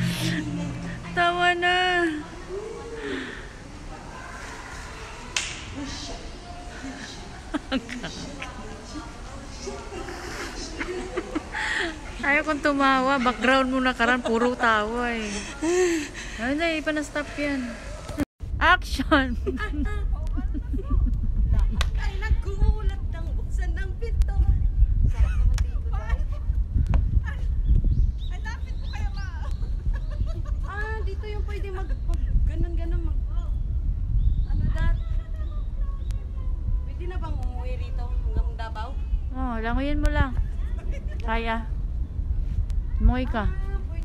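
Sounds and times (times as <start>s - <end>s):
faint voices: 0.0s - 18.3s
room noise: 0.0s - 18.3s
wind buffeting microphone: 0.0s - 44.0s.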